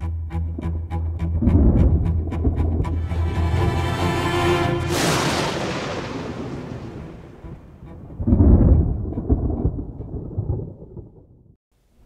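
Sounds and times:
deep thunder-like rumble: 4.9s - 11.6s.

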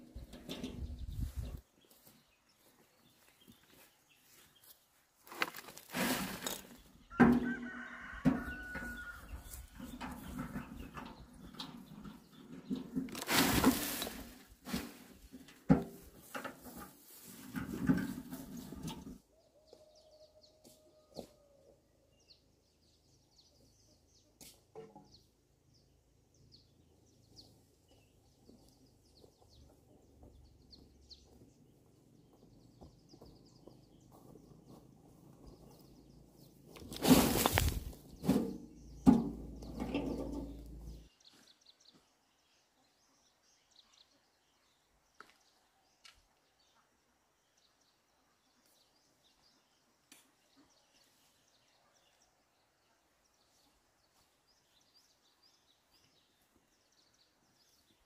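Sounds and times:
faint birds chirping: 0.0s - 58.0s
soil scraping and thudding: 5.2s - 19.2s, 36.7s - 41.1s.

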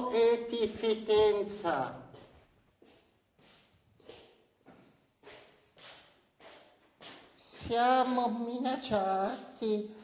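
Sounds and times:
shuffling footsteps on stone floor: 1.1s - 9.6s.

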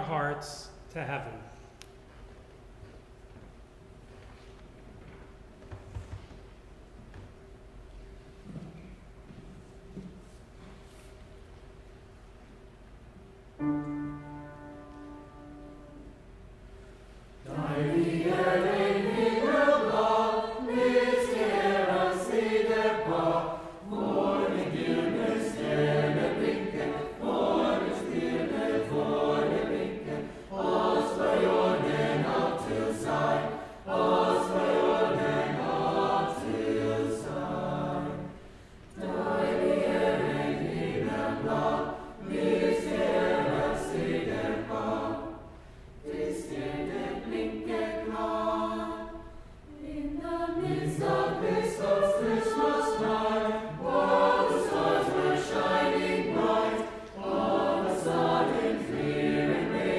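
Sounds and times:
mixed choir singing: 17.4s - 59.9s.

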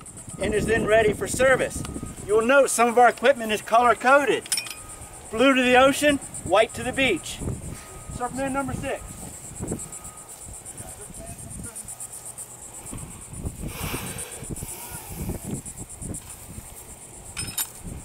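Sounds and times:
insects chirring: 0.0s - 18.0s.

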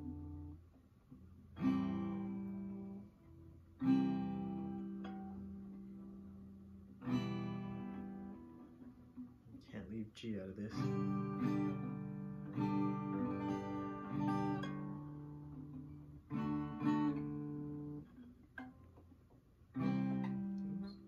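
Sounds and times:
acoustic guitar strums: 0.0s - 21.0s.

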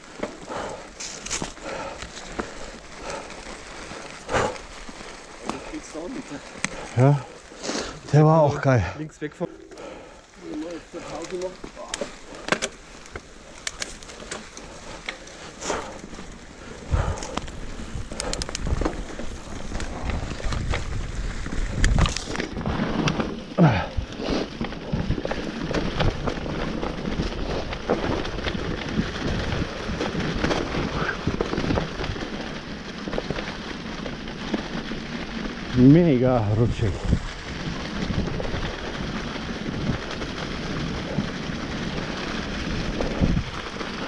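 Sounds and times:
bike knocking and rattling: 0.0s - 44.0s
bike tyres crunching through leaves: 0.0s - 44.0s.

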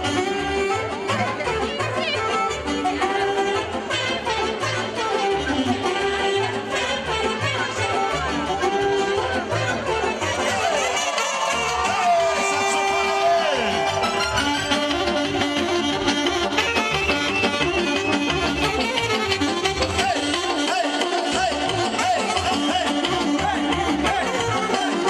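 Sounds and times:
saxophone-led folk dance music: 0.0s - 25.0s
pulsing bass beat: 11.7s - 25.0s.

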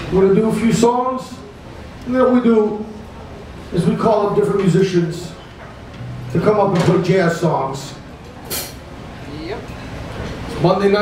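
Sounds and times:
bar-room background noise: 0.0s - 11.0s.

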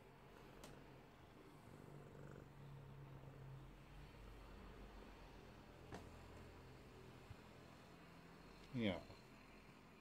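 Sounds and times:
cat purring: 0.0s - 5.5s.

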